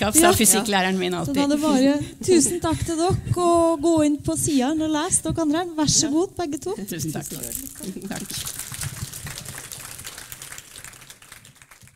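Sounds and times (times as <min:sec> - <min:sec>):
audience applause: 0:07.8 - 0:11.9.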